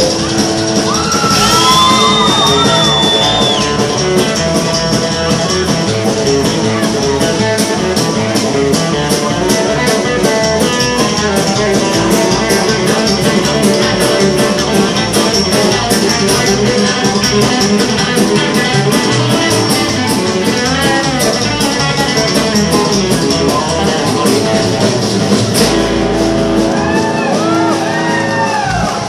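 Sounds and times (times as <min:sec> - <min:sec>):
live band playing: 0:00.0 - 0:29.0.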